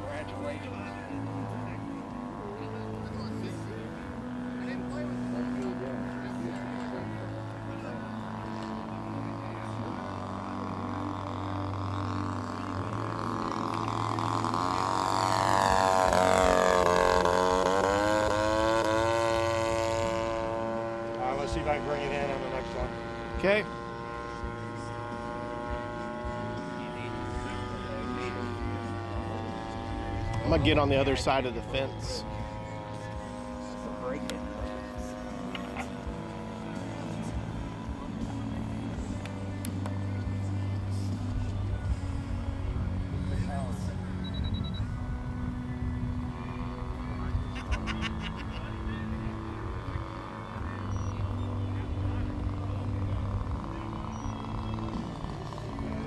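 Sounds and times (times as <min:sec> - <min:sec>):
model airplane engine in flight: 0:00.0 - 0:56.0.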